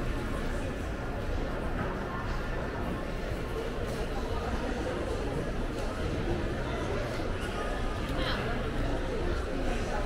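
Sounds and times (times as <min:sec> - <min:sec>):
indistinct chatter of shoppers: 0:00.0 - 0:10.0.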